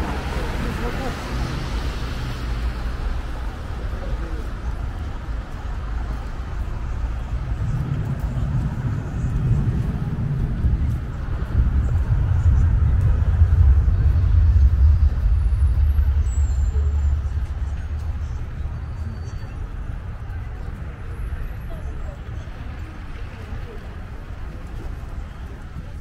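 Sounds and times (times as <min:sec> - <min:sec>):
heavy vehicle passing: 0:00.0 - 0:21.9
road traffic rumble: 0:00.0 - 0:26.0.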